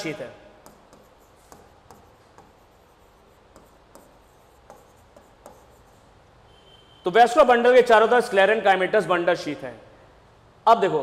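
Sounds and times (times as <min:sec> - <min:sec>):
stylus tapping and rubbing on screen: 0:00.0 - 0:06.2.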